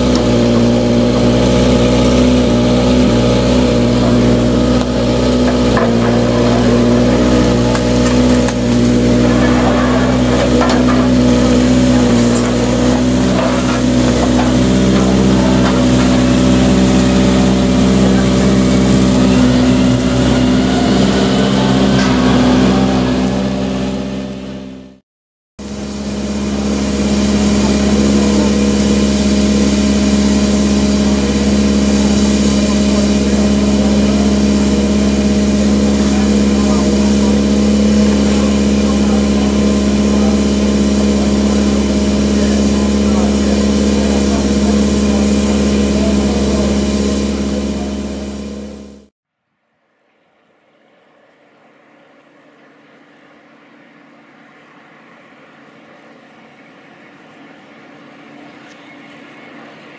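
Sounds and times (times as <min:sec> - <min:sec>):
steam hissing: 0:00.0 - 0:24.0, 0:25.6 - 0:48.8
steady droning hum: 0:00.0 - 0:24.9, 0:25.6 - 0:49.1, 0:49.8 - 0:59.9.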